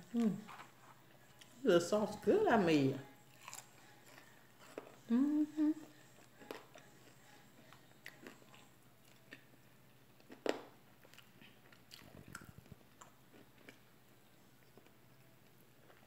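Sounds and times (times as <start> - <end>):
chewing and wet mouth clicks: 10.2 - 13.8.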